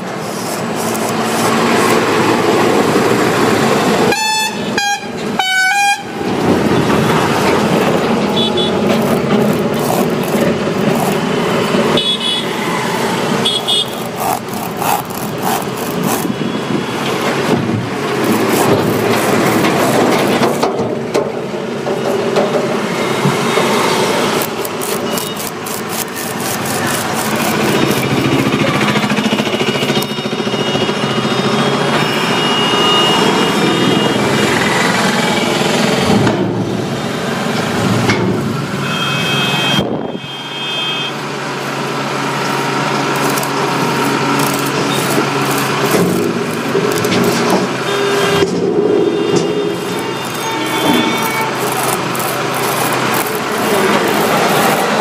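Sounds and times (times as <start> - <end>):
knife scraping rubber: 0.0 - 2.5, 7.0 - 12.1, 12.9 - 20.7, 24.2 - 30.1, 42.4 - 48.5, 49.3 - 55.0
horn toots: 11.9 - 17.1, 47.0 - 52.2.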